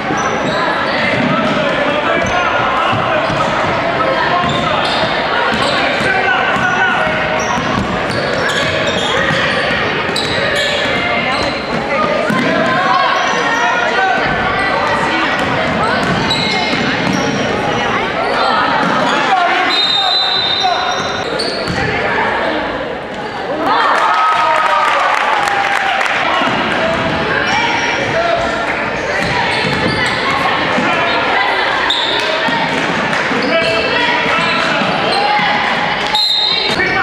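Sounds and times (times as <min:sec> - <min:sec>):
sneaker squeaks: 0:00.0 - 0:01.6, 0:02.2 - 0:17.6, 0:18.2 - 0:22.0, 0:27.4 - 0:31.1, 0:31.7 - 0:32.6, 0:33.3 - 0:37.0
voices echoing in a hall: 0:00.0 - 0:37.0.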